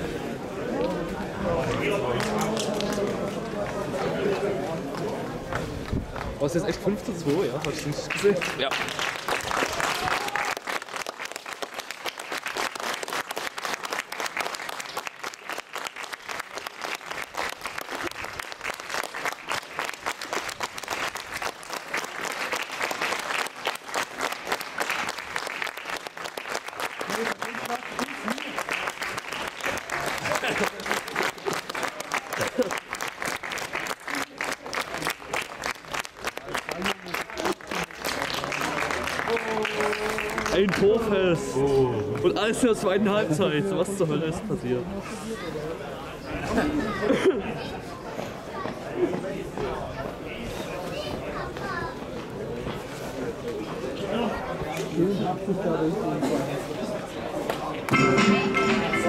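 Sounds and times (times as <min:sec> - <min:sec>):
crowd clapping: 0:01.6 - 0:04.1, 0:07.3 - 0:43.0, 0:57.5 - 0:59.0.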